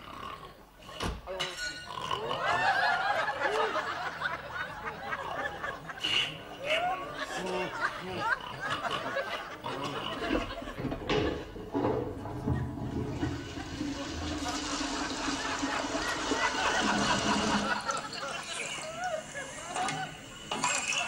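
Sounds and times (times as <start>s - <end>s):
toilet flushing: 10.1s - 21.0s
water rushing: 12.6s - 18.5s.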